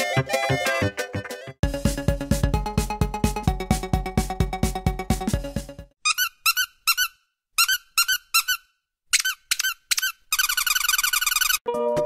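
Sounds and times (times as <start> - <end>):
background music: 0.0 - 6.0, 11.7 - 12.0
short high-pitched squeaks: 6.0 - 11.7.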